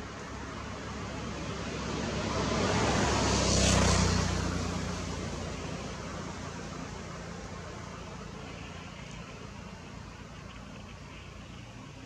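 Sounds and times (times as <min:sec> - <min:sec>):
motor vehicle passing by: 0:00.0 - 0:12.0.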